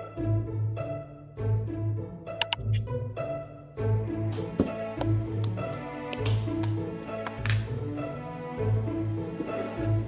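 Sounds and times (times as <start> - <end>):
gentle background music: 0.0 - 10.0.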